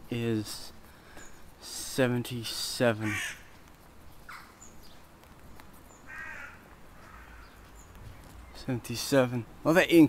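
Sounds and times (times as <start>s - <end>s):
crow cawing: 3.0s - 3.6s, 4.3s - 4.6s, 6.1s - 7.7s.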